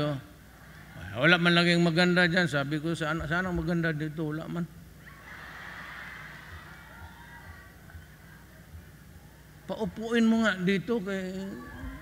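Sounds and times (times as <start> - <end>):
crowd cheering and laughing: 0.5 - 1.3, 5.0 - 9.6.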